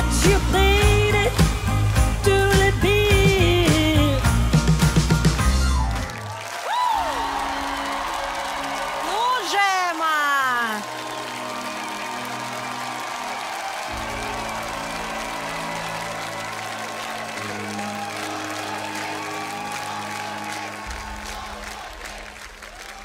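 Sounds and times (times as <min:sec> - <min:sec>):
audience applause: 0:00.0 - 0:23.0
soft music of sustained chords: 0:10.9 - 0:21.3.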